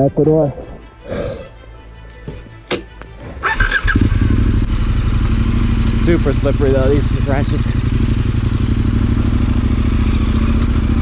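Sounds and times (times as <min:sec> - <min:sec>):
motorcycle engine: 0:03.2 - 0:11.0.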